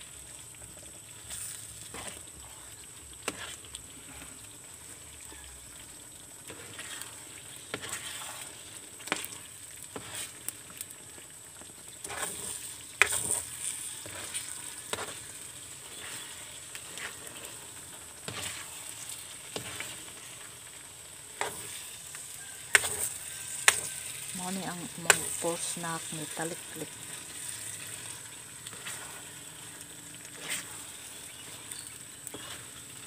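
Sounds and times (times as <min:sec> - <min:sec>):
sweet mixture sizzling and bubbling: 0:00.0 - 0:33.0
utensil scraping a metal pan: 0:06.5 - 0:10.3, 0:12.0 - 0:17.6, 0:18.2 - 0:19.9, 0:27.1 - 0:33.0.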